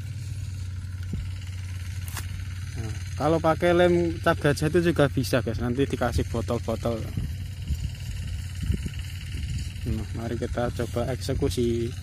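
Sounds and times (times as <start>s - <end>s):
wind on microphone: 7.0s - 10.1s.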